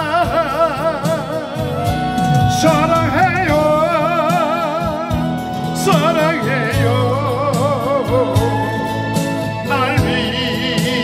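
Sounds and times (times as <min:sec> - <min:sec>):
man singing with vibrato: 0:00.0 - 0:08.8, 0:09.6 - 0:11.0
acoustic guitar: 0:00.0 - 0:11.0
bass accompaniment: 0:00.0 - 0:11.0.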